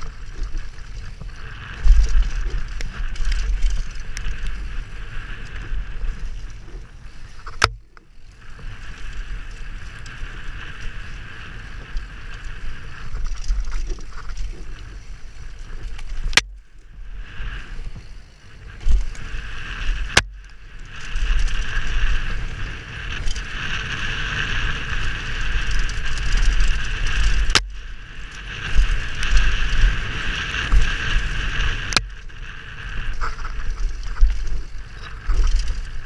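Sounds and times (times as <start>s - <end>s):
bike rumble and rattle: 0.0s - 36.0s
wind on microphone: 0.0s - 36.0s.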